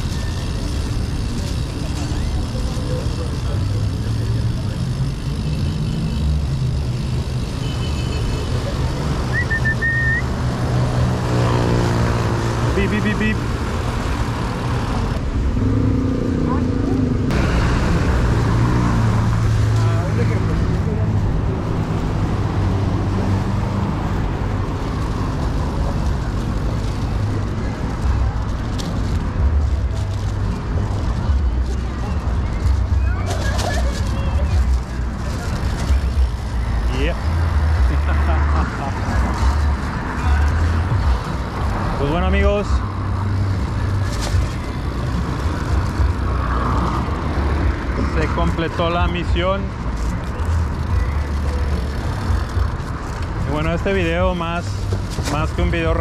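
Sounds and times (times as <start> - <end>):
road traffic: 0.0 - 56.0
wind and tyres rumbling: 0.0 - 56.0
people's voices: 0.6 - 5.5, 30.0 - 42.9.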